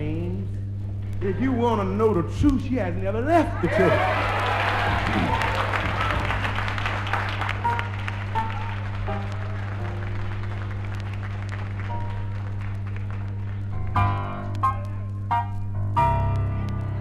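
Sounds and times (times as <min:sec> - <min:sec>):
gospel music: 0:00.0 - 0:17.0
low hum: 0:00.0 - 0:17.0
audience applause: 0:03.6 - 0:13.8
soft keyboard notes: 0:04.9 - 0:17.0.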